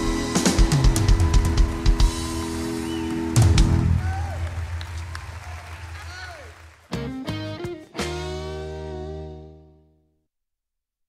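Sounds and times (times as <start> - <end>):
country band playing: 0.0 - 3.9, 6.9 - 9.8
electric guitar chord ringing: 7.2 - 9.8.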